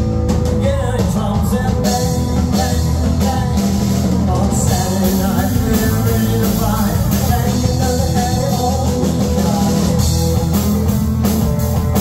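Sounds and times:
drum kit: 0.0 - 12.0
electric bass: 0.0 - 12.0
electric guitar: 0.0 - 12.0.

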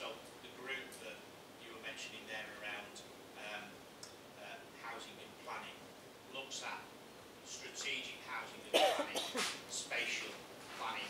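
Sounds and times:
man speaking into microphone: 0.0 - 3.8, 4.4 - 11.0
sudden cough: 8.7 - 9.6.

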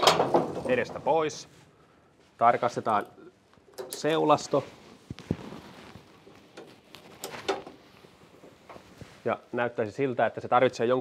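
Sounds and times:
light rustling: 2.4 - 9.4.

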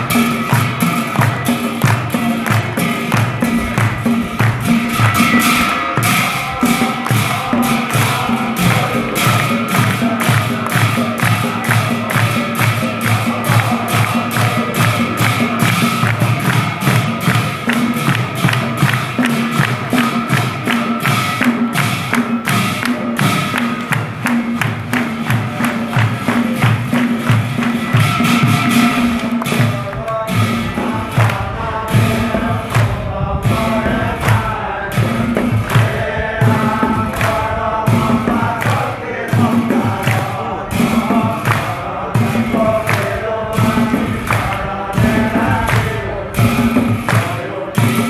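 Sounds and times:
barrel drum beat: 0.0 - 48.0
group of men chanting: 0.0 - 48.0
small hand cymbals: 0.0 - 48.0.

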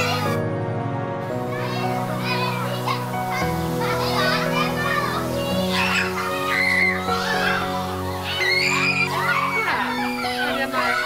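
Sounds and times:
children shouting and shrieking: 0.0 - 0.4, 1.3 - 11.0
background music with held chords: 0.0 - 11.0.

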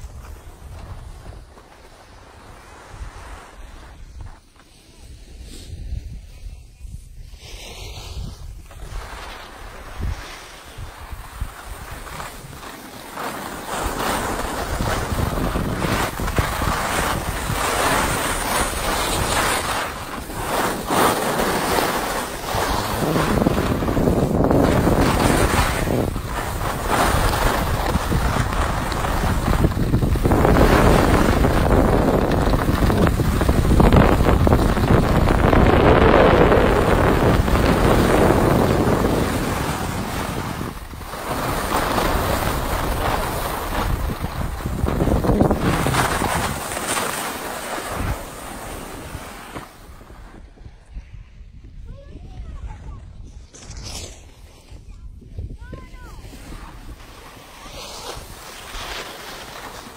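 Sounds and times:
skis scraping on snow: 0.0 - 51.5, 52.6 - 59.9
wind rushing over microphone: 0.0 - 59.9.

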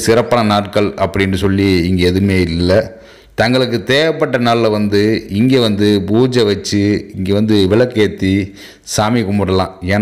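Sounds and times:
man narrating: 0.0 - 10.0.

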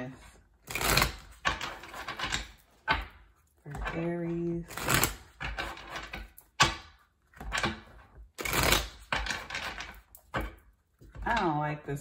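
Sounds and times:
cards being shuffled: 0.6 - 2.5, 8.4 - 10.6.

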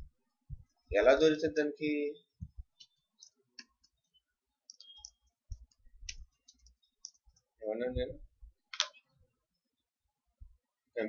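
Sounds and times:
keyboard typing clicks: 4.7 - 7.2.

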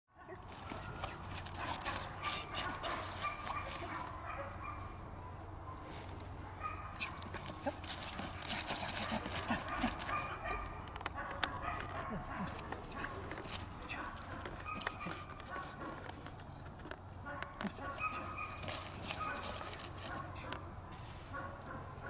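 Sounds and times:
puppy yipping: 0.2 - 4.9, 9.8 - 13.1, 14.0 - 16.0, 17.3 - 20.3.

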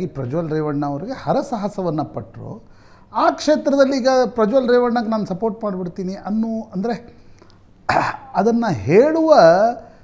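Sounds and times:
man speaking: 0.0 - 7.1, 7.9 - 9.9
man clearing throat: 7.9 - 8.4.

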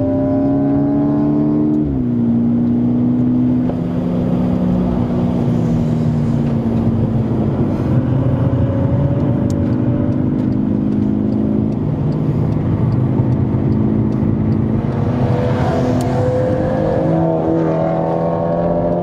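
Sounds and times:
car engine accelerating: 0.0 - 19.0
road and tyre noise: 0.0 - 19.0.

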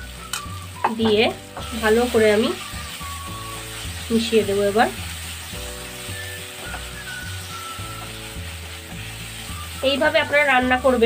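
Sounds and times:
background music: 0.0 - 11.0
food sizzling in oil: 0.0 - 11.0.

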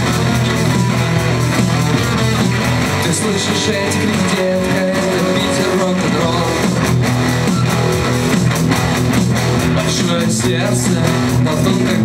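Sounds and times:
drum beat: 0.0 - 12.0
electric guitars: 0.0 - 12.0.

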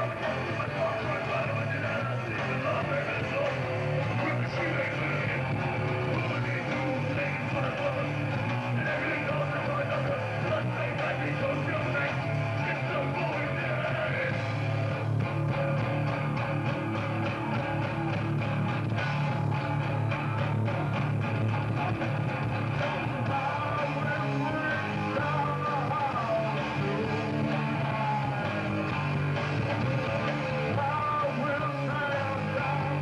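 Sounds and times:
person singing into a microphone: 0.0 - 14.5, 22.8 - 33.0
bass guitar: 0.0 - 33.0
drums: 0.0 - 33.0
electric guitar: 0.0 - 33.0.

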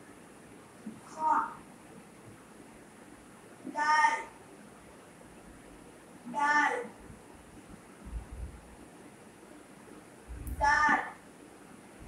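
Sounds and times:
child calling out: 3.8 - 4.3, 6.3 - 6.9, 10.6 - 11.2.

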